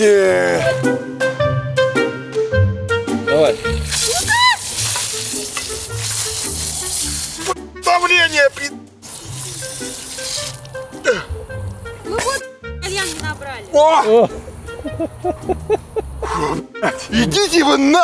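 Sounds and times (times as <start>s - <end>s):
background music: 0.0s - 18.0s
water spraying from hose: 3.5s - 7.6s, 8.5s - 13.4s
people shouting: 4.0s - 4.8s.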